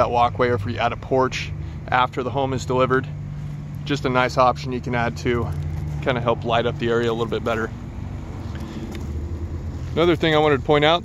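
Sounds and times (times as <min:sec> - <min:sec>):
outdoor low rumble: 0:00.0 - 0:11.0.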